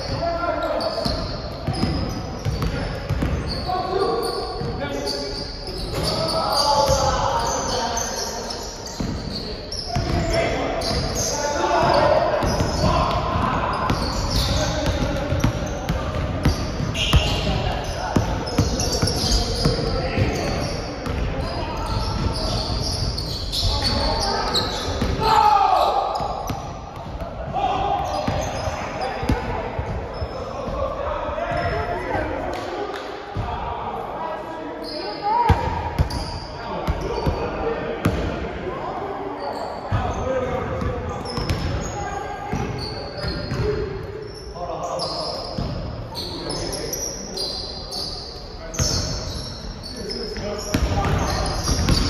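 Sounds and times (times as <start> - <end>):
players' voices and calls: 0.0 - 52.0
basketballs bouncing on hardwood floor: 1.1 - 3.5, 11.8 - 21.4, 42.5 - 43.8, 50.7 - 52.0.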